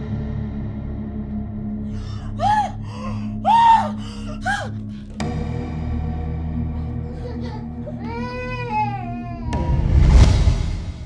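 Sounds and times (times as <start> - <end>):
low music drone: 0.0 - 11.0
high crying wail: 2.2 - 4.8, 7.1 - 9.6.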